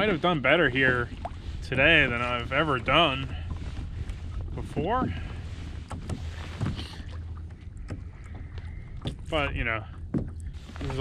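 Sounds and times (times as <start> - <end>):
wind rumbling on microphone: 0.0 - 11.0
light clicks and knocks: 5.0 - 11.0.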